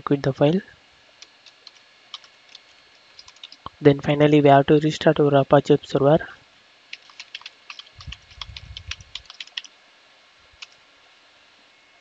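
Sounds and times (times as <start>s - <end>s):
computer keyboard typing: 1.2s - 3.7s, 6.9s - 9.7s, 10.6s - 10.8s
faint low rumble: 7.9s - 9.2s.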